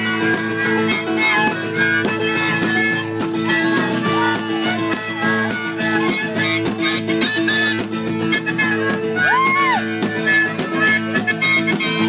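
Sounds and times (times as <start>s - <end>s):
harmonica playing held notes: 0.0s - 12.0s
strummed acoustic guitar: 0.0s - 12.0s.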